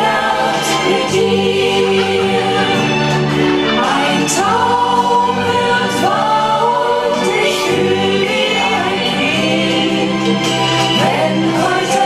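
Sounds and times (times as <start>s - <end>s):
backing music: 0.0s - 12.0s
choir-like voices singing: 0.0s - 12.0s.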